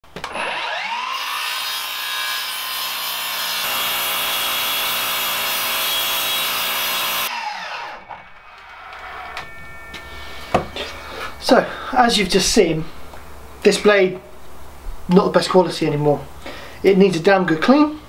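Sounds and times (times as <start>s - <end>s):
mitre saw cutting wood: 0.3s - 10.0s.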